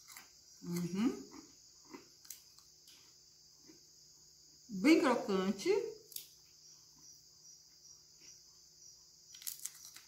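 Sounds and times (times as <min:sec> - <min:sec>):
biscuit crunching: 0:00.0 - 0:00.4, 0:09.3 - 0:10.0
crickets chirping: 0:00.0 - 0:10.0.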